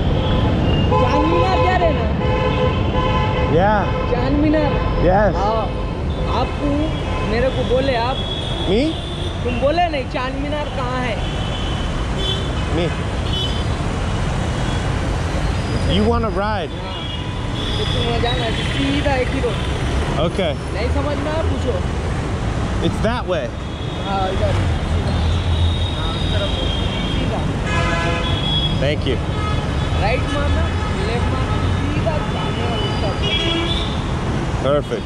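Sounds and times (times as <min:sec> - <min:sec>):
vehicle horn honking: 0:00.0 - 0:09.5, 0:25.4 - 0:34.0
busy street traffic: 0:00.0 - 0:35.0.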